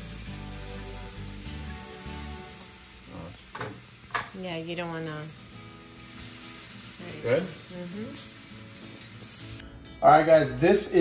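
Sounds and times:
background music with bass notes: 0.0 - 2.8
fish sizzling in a frying pan: 0.0 - 9.6.

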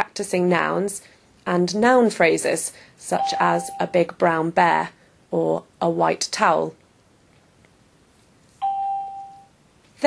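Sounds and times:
electronic chime: 3.2 - 3.9, 8.6 - 9.5.

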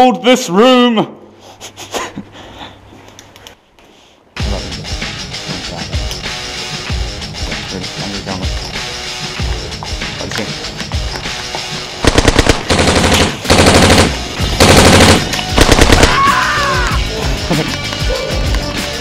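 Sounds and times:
background music: 4.4 - 19.0
airsoft guns firing bursts: 12.0 - 16.4.

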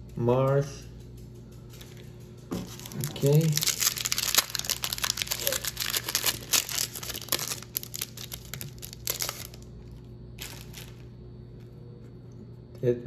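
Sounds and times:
foil pack tearing and crinkling: 2.6 - 11.1.

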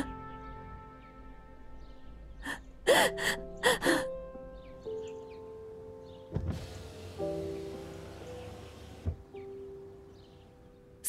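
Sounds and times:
soft background music: 0.0 - 11.0
woman crying and sobbing: 2.4 - 4.2.

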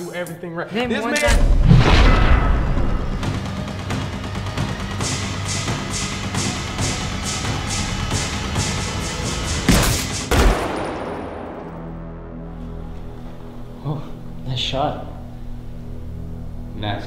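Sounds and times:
action film score: 1.2 - 17.0
loud sharp bangs: 5.0 - 12.2.

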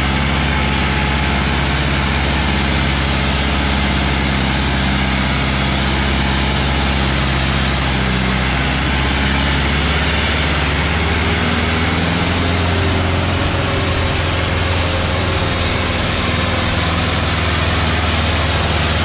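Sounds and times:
tractor diesel engine under load: 0.0 - 19.0.

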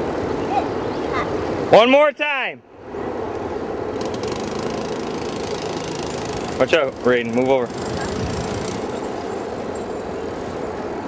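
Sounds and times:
atv engine running: 3.9 - 10.7.

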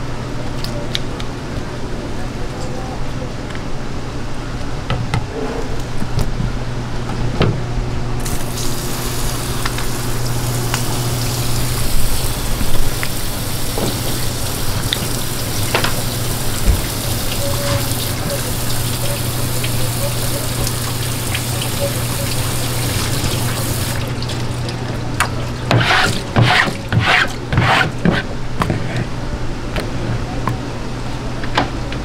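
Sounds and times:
tap water running onto board: 8.2 - 28.2
squid rubbed by hand: 25.8 - 29.1.

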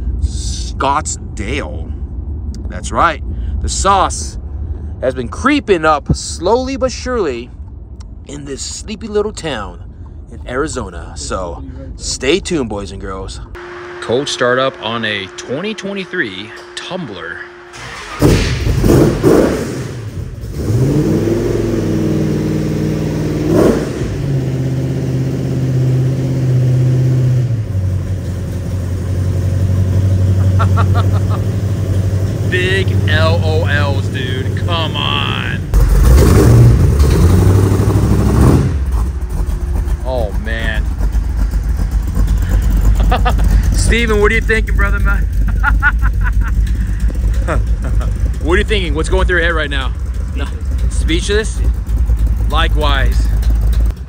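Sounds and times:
engine starting and idling: 13.6 - 21.0, 35.7 - 54.0.

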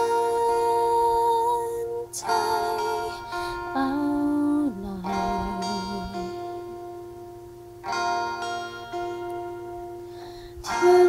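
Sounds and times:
acoustic guitar chords ringing: 0.0 - 11.0.

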